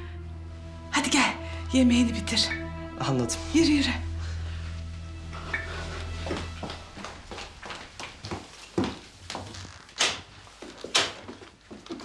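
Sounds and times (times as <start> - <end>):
music cue: 0.0 - 7.3
footsteps: 5.4 - 12.0.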